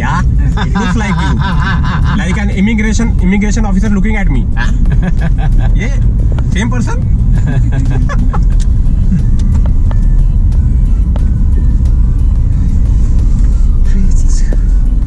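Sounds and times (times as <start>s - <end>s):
car engine and road noise: 0.0s - 15.0s.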